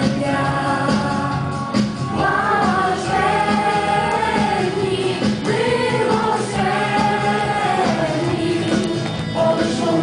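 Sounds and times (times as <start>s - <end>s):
group of voices singing: 0.0s - 10.0s.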